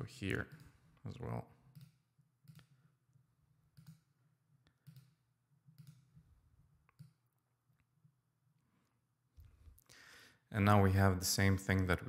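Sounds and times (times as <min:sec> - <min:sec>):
computer mouse clicks: 0:01.7 - 0:02.8, 0:03.7 - 0:06.2, 0:06.8 - 0:07.2.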